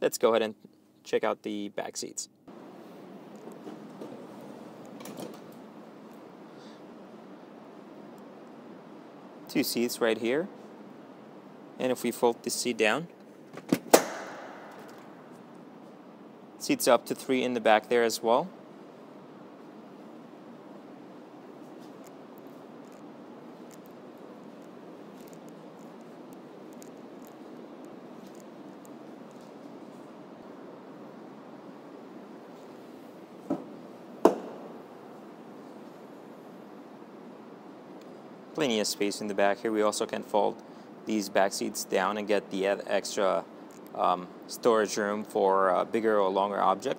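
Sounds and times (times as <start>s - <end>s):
faint steady hiss: 0.0s - 46.9s.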